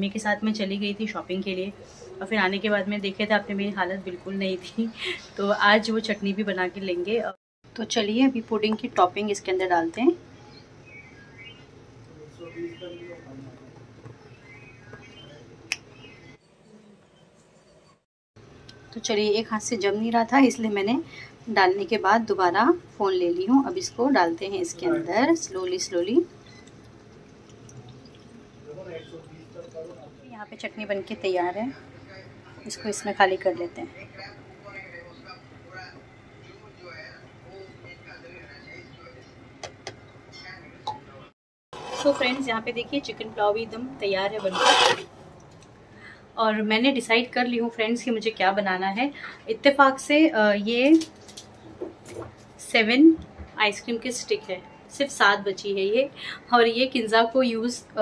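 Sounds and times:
faint bird chirping: 10.2s - 18.0s.

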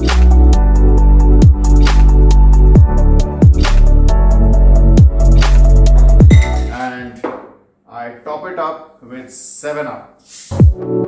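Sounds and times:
man speaking: 6.5s - 10.1s.

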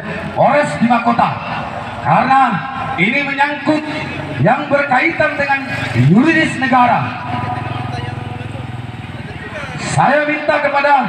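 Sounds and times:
vehicle engine running: 1.4s - 10.8s.

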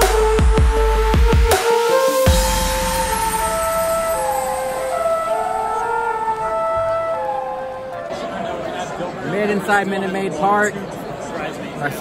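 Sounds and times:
electronic music over loudspeakers: 0.0s - 8.0s.

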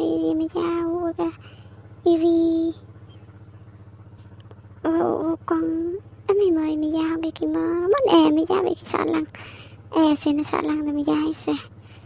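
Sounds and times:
low fluttering hum: 0.0s - 12.0s.

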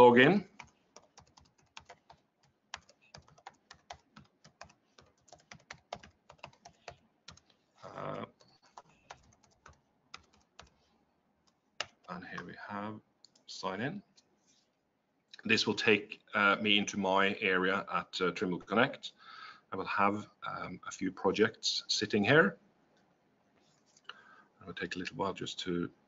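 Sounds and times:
person speaking: 0.0s - 0.7s, 6.5s - 9.3s, 11.8s - 14.2s, 15.4s - 19.1s, 24.6s - 25.9s
keyboard typing clicks: 0.6s - 7.4s.

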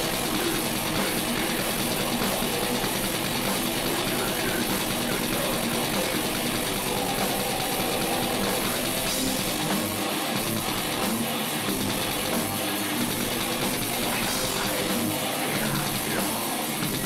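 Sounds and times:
distorted guitar: 0.0s - 17.0s
metal band playing live: 0.0s - 17.0s
very fast drumming: 0.0s - 17.0s.

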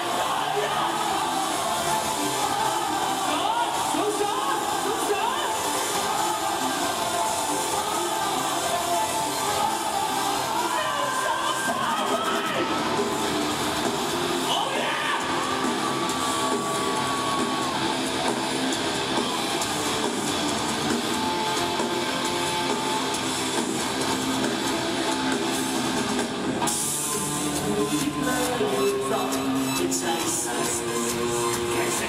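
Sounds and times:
rock band playing live: 0.0s - 32.0s.

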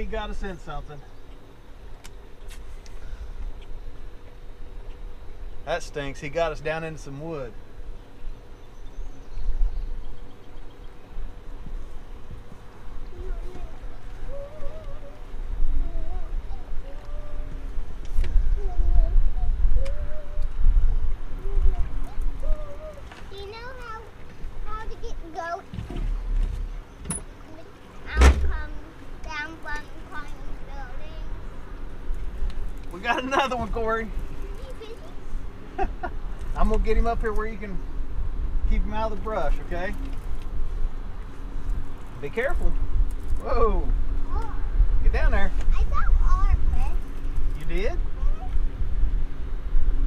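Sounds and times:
faint steady hum: 0.0s - 50.0s
wind buffeting microphone: 7.5s - 27.4s, 28.0s - 50.0s
sharp loud thump: 28.2s - 28.5s.

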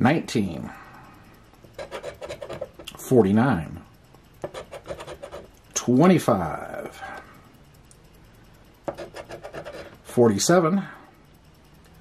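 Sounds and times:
coin scraping lottery ticket: 1.8s - 2.7s, 4.5s - 5.5s.

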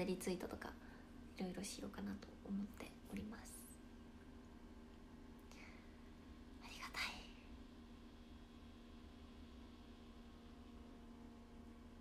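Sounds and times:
faint room hum: 0.0s - 12.0s
woman whispering: 1.5s - 3.8s, 6.6s - 7.5s.

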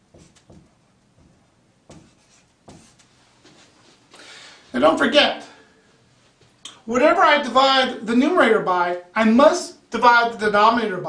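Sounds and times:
marker scratching on whiteboard: 0.0s - 3.1s.

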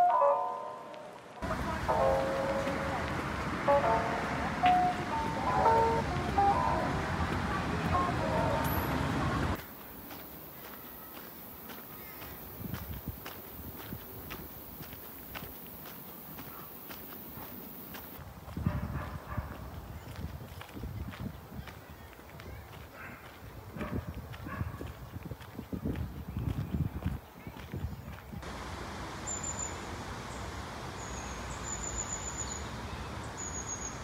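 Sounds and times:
steady outdoor hiss: 0.0s - 24.3s, 25.6s - 34.0s
footsteps on gravel: 9.5s - 28.6s.

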